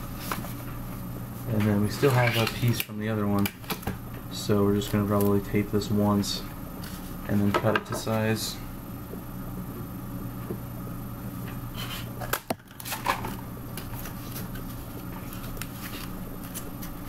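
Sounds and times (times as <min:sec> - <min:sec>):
steady low hum: 0:00.0 - 0:17.0
paper and scissors clicks and rustles: 0:12.2 - 0:17.0.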